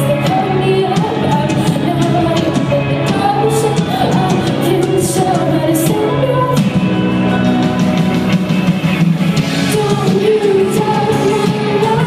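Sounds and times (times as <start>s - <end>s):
live band playing: 0.0s - 12.0s.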